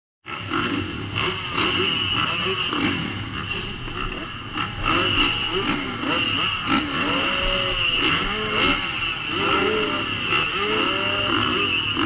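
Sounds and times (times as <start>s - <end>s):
motocross bike engines revving: 0.3s - 12.0s.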